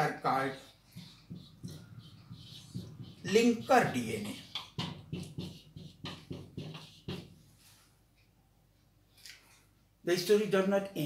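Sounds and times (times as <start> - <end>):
faint scrape or rustle: 7.5 - 8.0.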